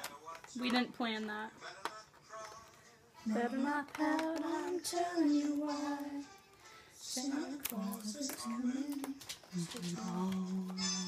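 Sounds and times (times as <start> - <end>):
woman singing wordless held notes: 3.2 - 6.4, 7.0 - 11.0.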